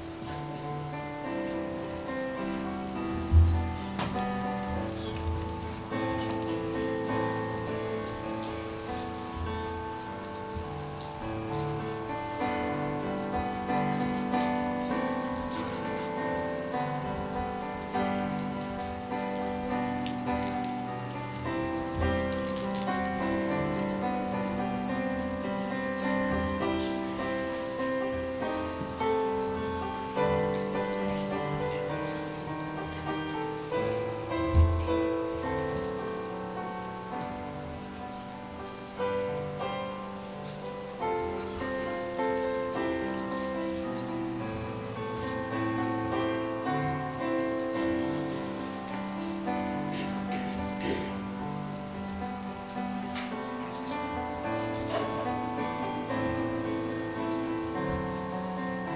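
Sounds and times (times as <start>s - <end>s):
faint crackle: 0.0s - 58.9s.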